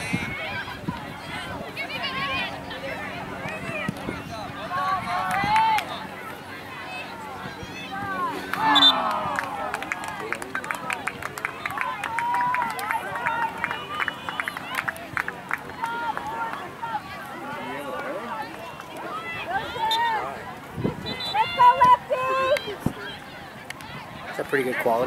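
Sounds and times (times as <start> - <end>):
indistinct voices calling out: 3.6 - 10.2
people shouting: 4.6 - 10.0, 19.0 - 20.4, 21.0 - 23.3.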